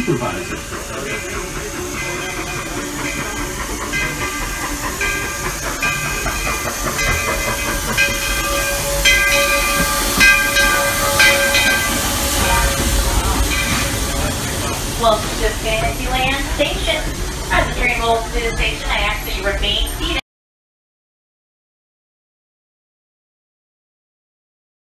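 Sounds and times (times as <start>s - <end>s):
locomotive engine rumble: 0.0s - 20.2s
steam hiss: 0.0s - 20.2s
steam locomotive bell ringing: 0.0s - 20.2s.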